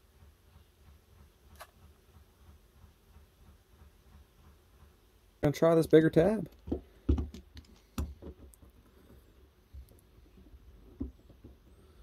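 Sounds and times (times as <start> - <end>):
plastic tool clicks and knocks: 6.5 - 8.8.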